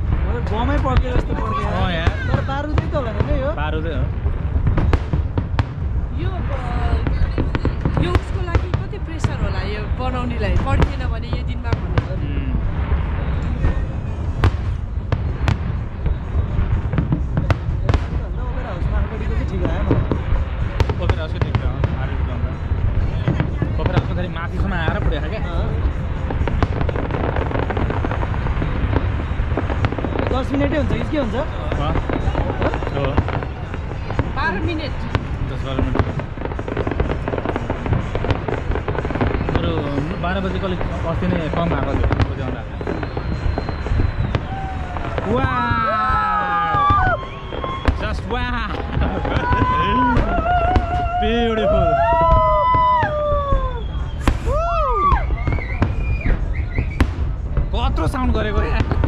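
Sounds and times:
crowd voices: 0:00.0 - 0:59.0
fireworks bangs and crackles: 0:00.0 - 0:59.0
low rumble: 0:00.0 - 0:59.0.

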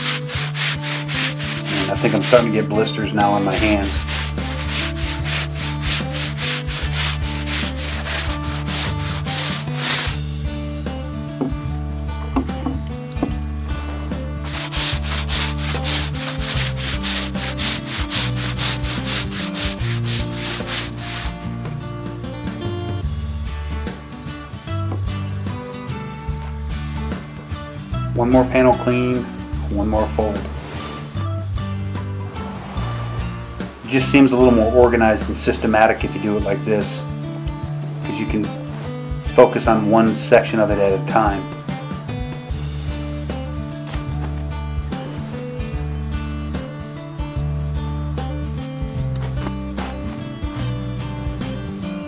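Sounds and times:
brush scrubbing canvas fabric: 0:00.0 - 0:10.2, 0:14.4 - 0:21.4, 0:30.5 - 0:31.2.

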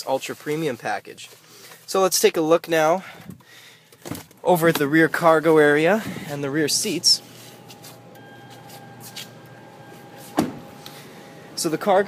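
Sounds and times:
car door shutting: 0:07.7 - 0:11.6.

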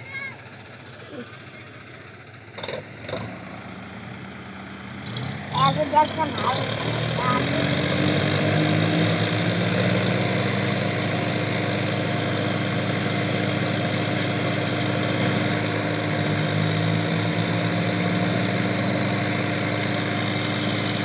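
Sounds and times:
diesel tractor engines running: 0:00.0 - 0:21.0.

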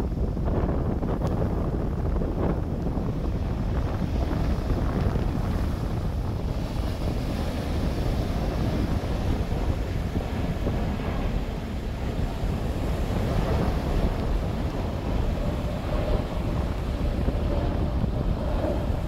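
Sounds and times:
jet airliner rumbling overhead: 0:00.0 - 0:19.0
wind buffeting microphone: 0:00.0 - 0:19.0.

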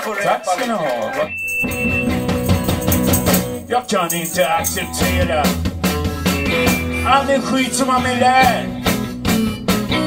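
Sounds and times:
brief high steady tone: 0:01.2 - 0:05.4.

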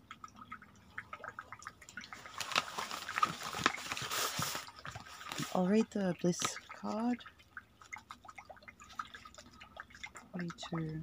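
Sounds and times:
water dripping and trickling: 0:00.0 - 0:11.0
cards rustling and tapping on cloth: 0:02.2 - 0:05.6.

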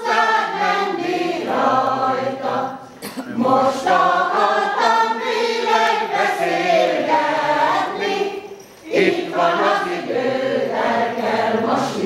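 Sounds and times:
women's choir singing in harmony: 0:00.0 - 0:12.0.

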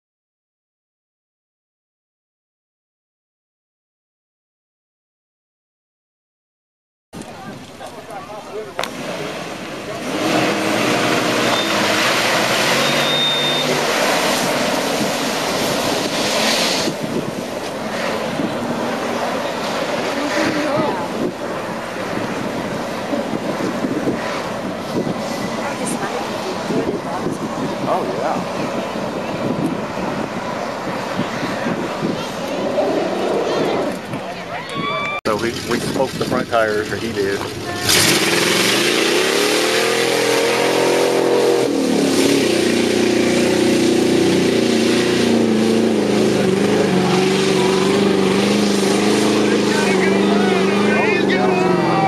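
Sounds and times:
tyres churning through mud: 0:07.2 - 0:52.0
engine revving hard: 0:08.8 - 0:17.2, 0:17.8 - 0:21.4, 0:37.8 - 0:52.0.

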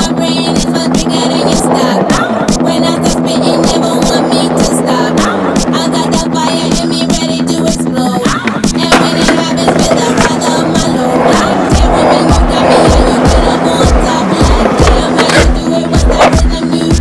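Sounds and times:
music with bass-drum beat: 0:00.0 - 0:17.0
skateboard wheels rolling on concrete: 0:00.0 - 0:17.0.

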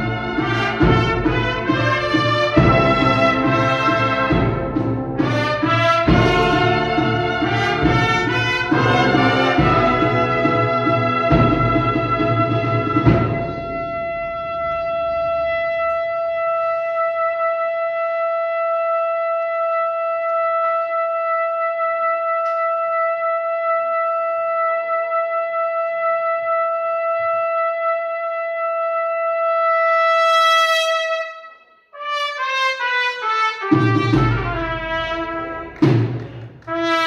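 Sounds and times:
brass band chord: 0:00.0 - 0:19.5, 0:20.2 - 0:37.0
processional march brass band: 0:00.0 - 0:37.0.

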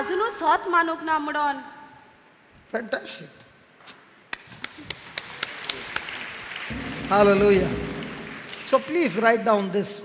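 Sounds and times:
hands clapping rhythmically: 0:04.3 - 0:09.7
wider applause: 0:04.4 - 0:09.6.

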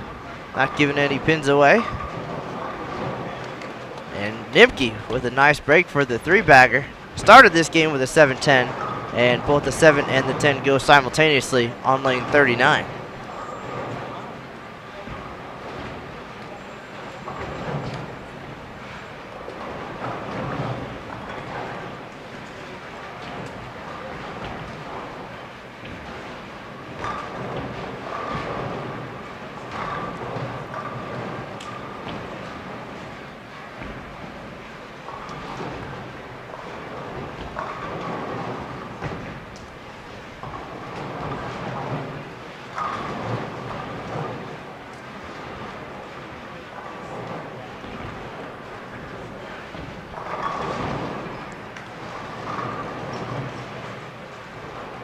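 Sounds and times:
bowling balls rolling: 0:00.0 - 0:55.0
bowling pins crashing: 0:00.0 - 0:55.0
background chatter: 0:43.4 - 0:54.6.

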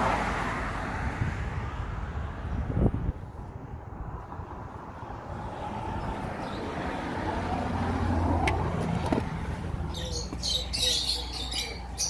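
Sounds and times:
road traffic rumble: 0:00.0 - 0:12.0.

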